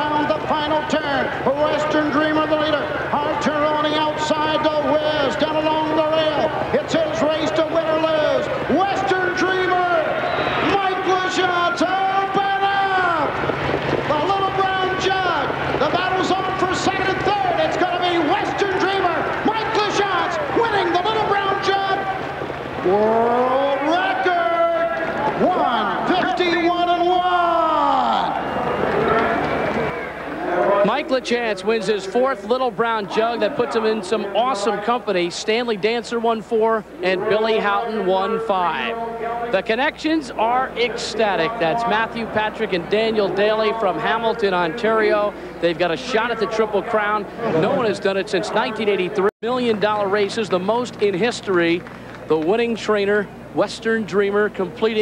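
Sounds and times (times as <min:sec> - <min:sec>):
man commentating excitedly: 0:00.0 - 0:28.5, 0:30.5 - 0:55.0.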